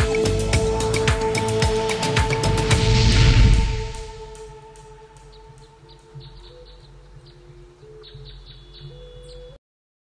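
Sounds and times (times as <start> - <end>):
bird chirps: 5.2 - 9.6.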